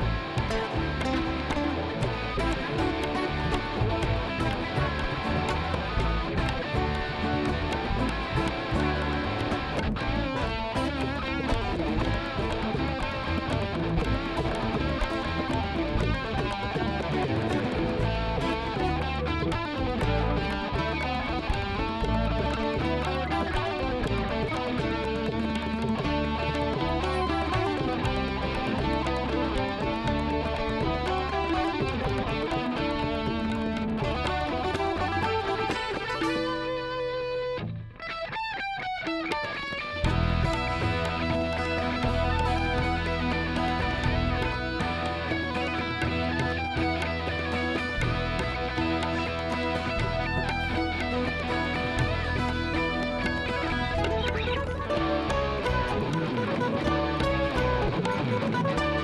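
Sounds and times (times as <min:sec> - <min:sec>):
electric guitar sliding runs: 0:00.0 - 0:59.0
fusion band instrumental: 0:00.0 - 0:59.0.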